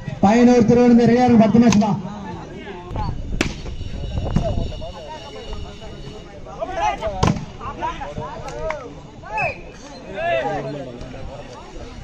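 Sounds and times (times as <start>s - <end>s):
people shouting: 4.5s - 10.7s.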